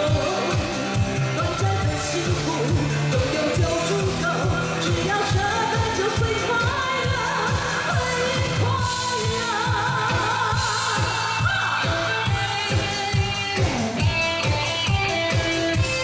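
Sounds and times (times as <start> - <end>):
woman singing into a microphone: 0.0 - 14.9
backing band with kick drum: 0.0 - 16.0.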